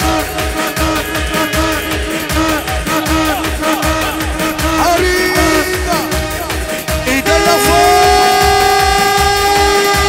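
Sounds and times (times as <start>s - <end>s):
electronic drum beat: 0.0s - 10.0s
horn-like synth note: 0.0s - 10.0s.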